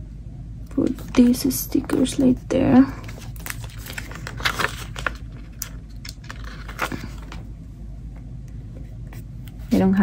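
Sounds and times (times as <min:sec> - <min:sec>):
papery rustles and crinkles: 0:00.8 - 0:07.5.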